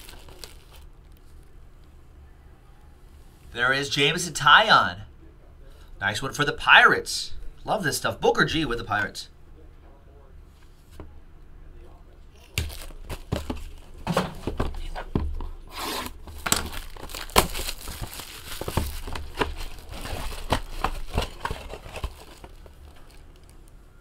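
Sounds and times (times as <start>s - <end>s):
plastic bag crinkling and tearing: 0.0s - 1.4s, 12.4s - 13.9s, 15.7s - 23.7s.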